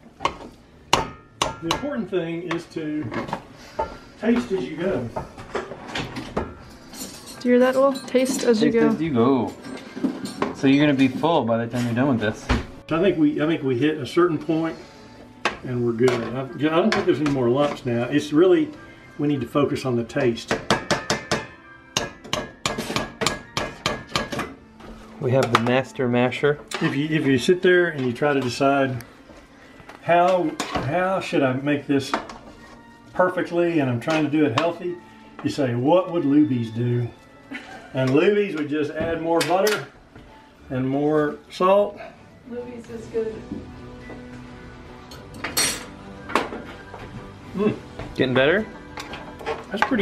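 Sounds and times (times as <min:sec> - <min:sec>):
faint background music: 0:00.0 - 0:50.0
potato masher knocking on metal pot: 0:20.5 - 0:24.5
metal spoon clinking on dish: 0:45.1 - 0:46.0.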